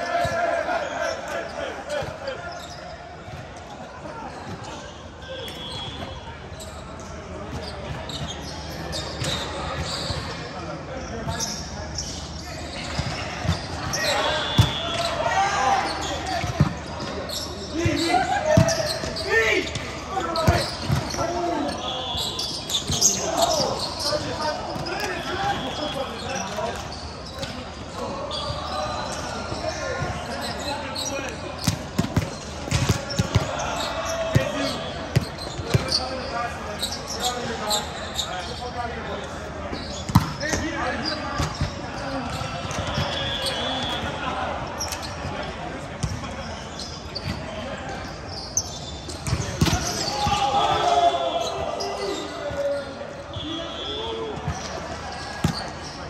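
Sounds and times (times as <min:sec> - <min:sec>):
players shouting: 0:00.0 - 0:02.9, 0:12.8 - 0:26.6, 0:49.4 - 0:55.6.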